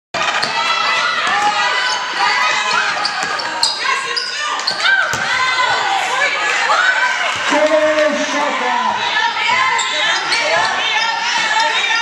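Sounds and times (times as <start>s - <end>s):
voices of players and spectators: 0.2s - 12.0s.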